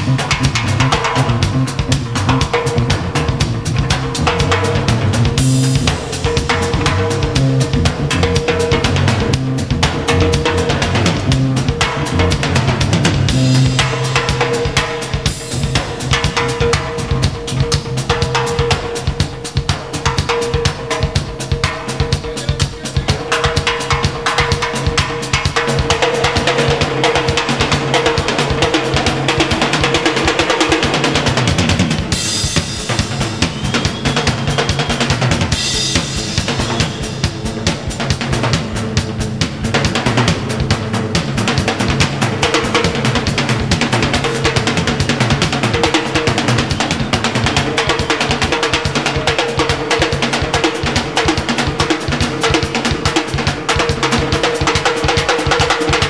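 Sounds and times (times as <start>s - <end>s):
low bass notes: 0.0s - 14.4s
fast rock drumming: 0.0s - 56.0s.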